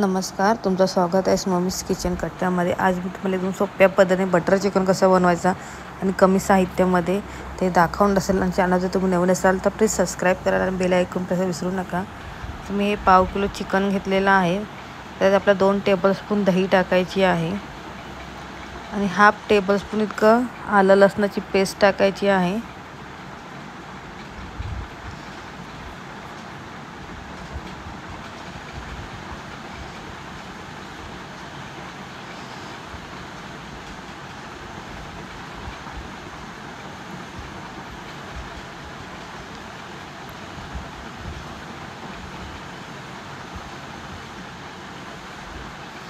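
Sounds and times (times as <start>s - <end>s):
rushing noise with low rumble: 0.0s - 46.0s.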